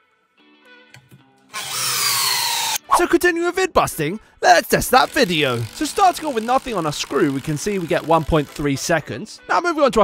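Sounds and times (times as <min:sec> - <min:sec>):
power drill whirring: 0:01.5 - 0:02.8, 0:04.9 - 0:08.9.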